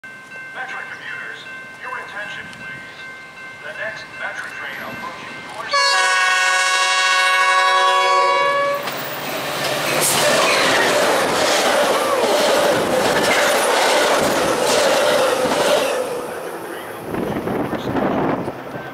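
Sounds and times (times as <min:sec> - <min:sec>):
train rumble and wheel clatter: 0:00.1 - 0:18.9
train air horn: 0:05.7 - 0:08.9.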